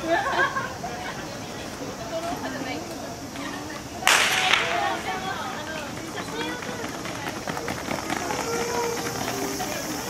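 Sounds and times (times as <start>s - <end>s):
starting signal crack: 4.0s - 6.8s.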